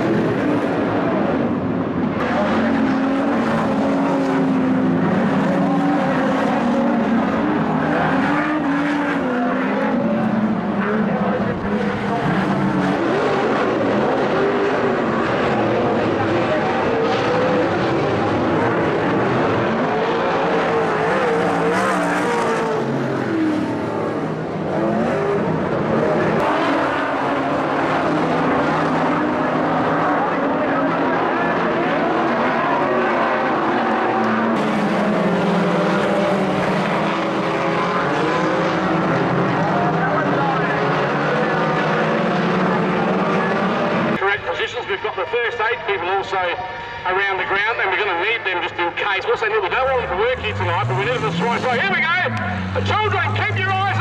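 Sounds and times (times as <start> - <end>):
race car engines running hard: 0.0 - 54.0.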